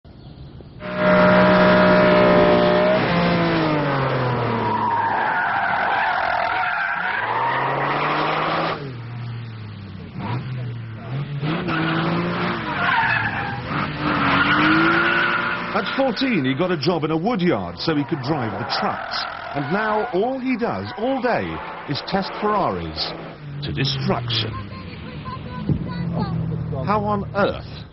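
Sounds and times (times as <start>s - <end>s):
sports car engine revving: 0.8s - 4.8s
tyres squealing: 4.4s - 8.6s, 11.1s - 26.5s.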